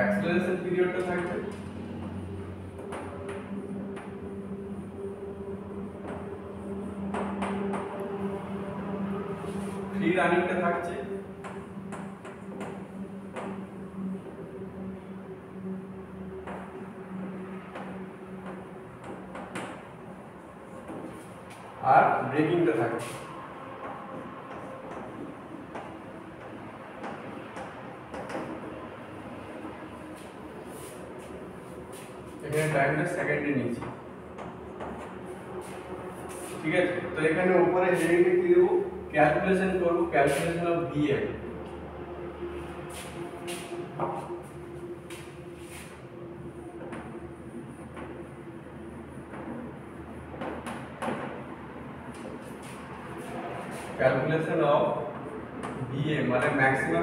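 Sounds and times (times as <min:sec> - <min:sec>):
room hum: 0:00.0 - 0:57.0
chalk scraping on blackboard: 0:23.0 - 0:23.3, 0:30.1 - 0:32.8, 0:34.8 - 0:36.7, 0:40.3 - 0:40.6, 0:42.9 - 0:46.0.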